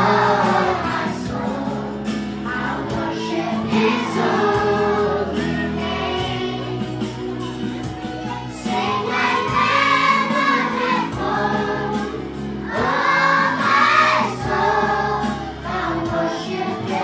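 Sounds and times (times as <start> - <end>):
children singing in chorus: 0.0 - 7.0, 8.5 - 17.0
low instrumental accompaniment: 0.0 - 17.0.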